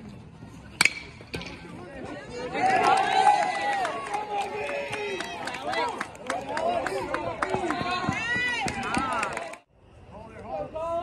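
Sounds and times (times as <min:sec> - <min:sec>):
metal bat striking ball: 0:00.8 - 0:01.6
spectators cheering: 0:02.3 - 0:09.6.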